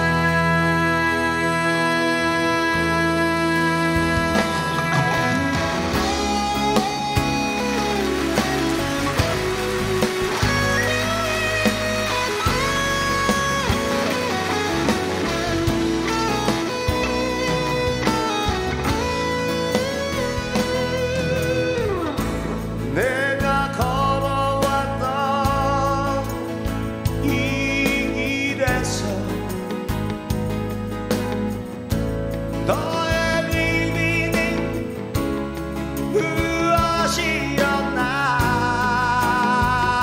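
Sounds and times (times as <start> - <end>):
live rock band playing: 0.0 - 40.0
electric guitar lead with bent notes: 1.1 - 27.3.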